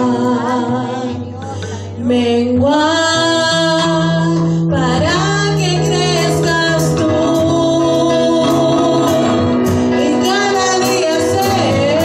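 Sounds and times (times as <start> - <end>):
low instrumental backing: 0.0 - 12.0
woman singing into microphone: 0.0 - 12.0.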